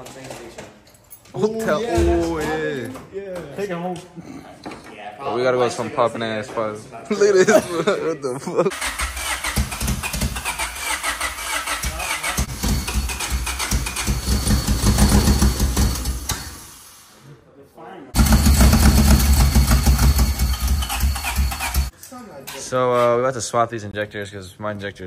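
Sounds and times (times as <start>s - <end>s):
engine cranking and catching: 8.7s - 16.6s, 18.2s - 21.9s.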